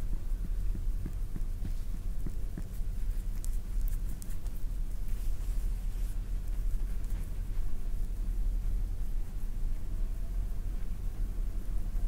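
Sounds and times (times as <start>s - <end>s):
fingers rubbing skin: 0.7s - 7.4s.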